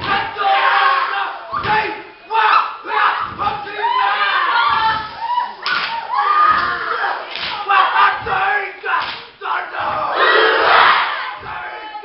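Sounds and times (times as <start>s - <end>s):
stamping or body-slapping thud: 1.6s - 1.9s, 4.7s - 7.6s, 9.0s - 10.0s.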